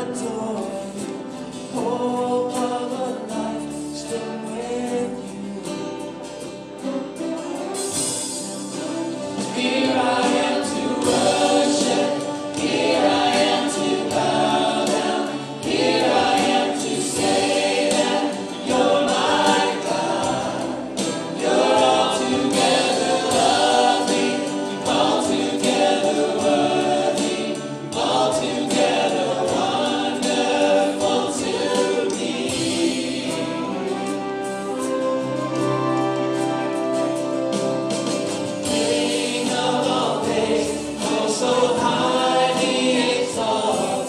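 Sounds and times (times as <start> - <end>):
singers singing together: 0.0 - 6.5, 7.9 - 44.0
strummed acoustic guitar: 0.0 - 44.0.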